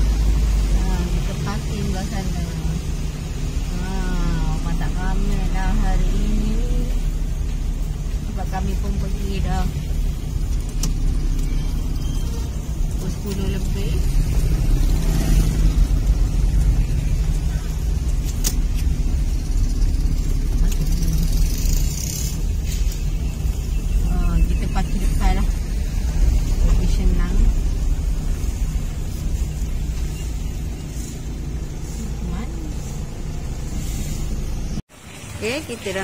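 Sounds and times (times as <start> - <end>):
car driving slowly: 0.0 - 36.0.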